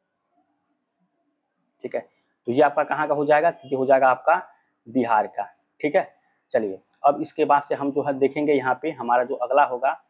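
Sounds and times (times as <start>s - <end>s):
man speaking: 1.8s - 10.0s.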